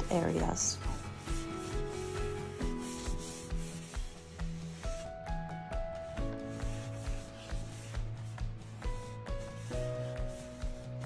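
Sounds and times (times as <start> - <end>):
background music with steady beat: 0.0 - 11.0
brush rubbing on wood: 0.0 - 11.0.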